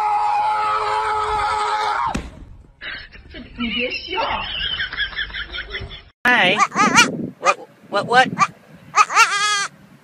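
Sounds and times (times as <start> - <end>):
goat bleating: 9.0 - 9.7.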